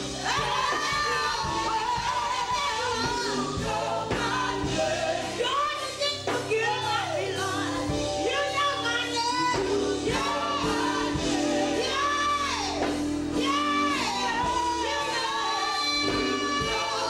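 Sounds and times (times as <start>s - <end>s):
group singing: 0.0s - 17.0s
woman singing into a microphone: 0.1s - 17.0s.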